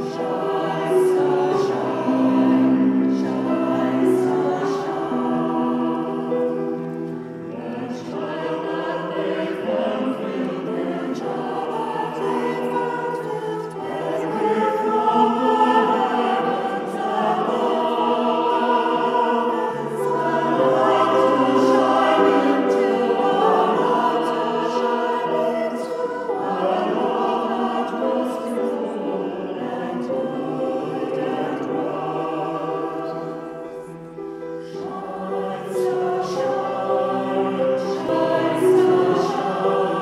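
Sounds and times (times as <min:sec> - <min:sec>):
choir singing a carol: 0:00.0 - 0:40.0.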